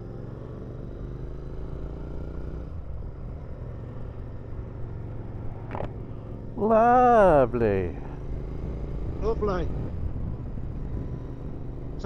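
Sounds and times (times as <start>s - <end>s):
motorcycle engine rumbling: 0.0s - 12.0s
wind noise: 8.6s - 11.7s.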